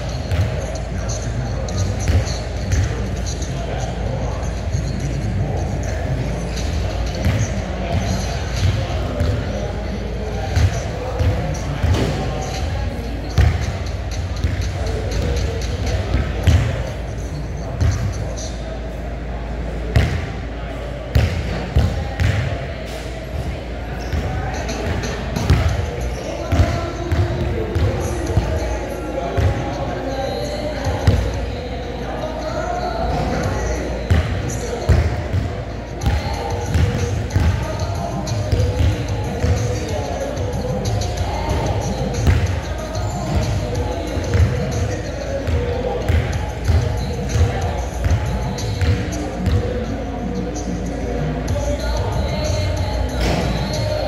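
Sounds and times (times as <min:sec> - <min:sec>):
indistinct voices: 0:00.0 - 0:54.0
basketball bouncing on court: 0:00.2 - 0:00.6, 0:02.0 - 0:02.9, 0:14.4 - 0:16.8, 0:20.0 - 0:20.3, 0:21.1 - 0:22.5, 0:24.1 - 0:28.6, 0:34.1 - 0:39.8, 0:40.9 - 0:42.6, 0:45.4 - 0:49.7.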